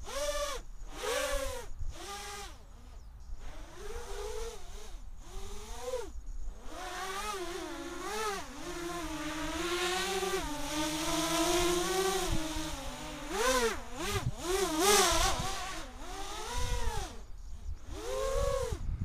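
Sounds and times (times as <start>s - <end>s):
quadcopter motors whining: 0.0s - 19.0s.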